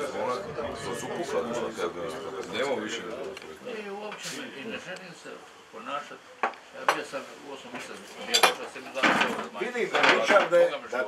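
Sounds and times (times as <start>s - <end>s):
men talking: 0.0s - 11.0s
cutlery and plates clinking: 8.2s - 9.4s.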